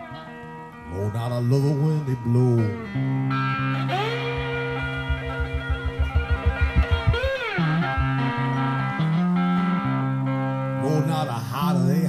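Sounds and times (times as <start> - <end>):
cigar box guitar blues: 0.0 - 12.0.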